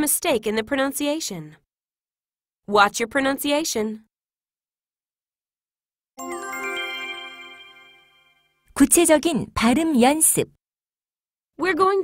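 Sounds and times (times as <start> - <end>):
bright chime jingle: 6.2 - 8.6.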